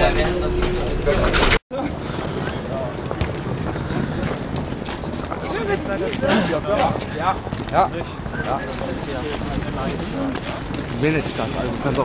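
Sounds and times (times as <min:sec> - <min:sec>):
city background noise: 0:00.0 - 0:12.0
wind noise on microphone: 0:00.0 - 0:12.0.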